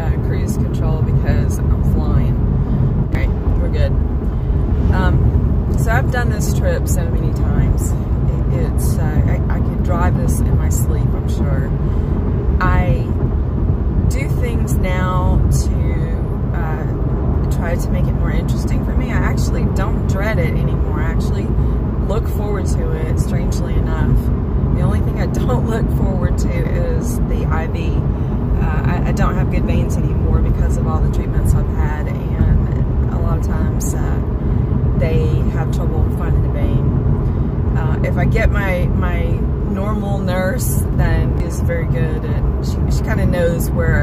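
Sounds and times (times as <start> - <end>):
woman talking: 0.0 - 2.4, 3.1 - 4.0, 4.8 - 11.8, 12.6 - 13.2, 14.1 - 34.3, 35.0 - 36.9, 37.7 - 44.0
car road and engine rumble: 0.0 - 44.0.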